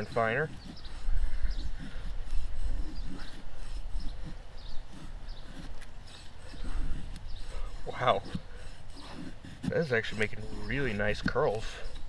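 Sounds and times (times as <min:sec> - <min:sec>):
knife scraping wooden stick: 0:00.0 - 0:12.0.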